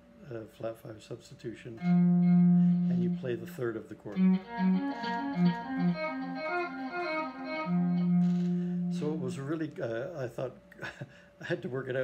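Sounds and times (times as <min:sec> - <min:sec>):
electric guitar with echo: 0:04.2 - 0:09.4.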